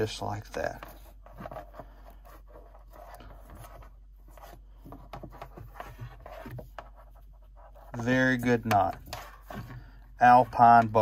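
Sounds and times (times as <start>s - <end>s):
rope rubbing and scraping: 0.0s - 11.0s.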